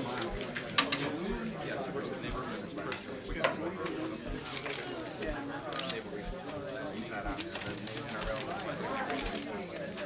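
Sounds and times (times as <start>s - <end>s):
crowd chatter in a room: 0.0s - 10.0s.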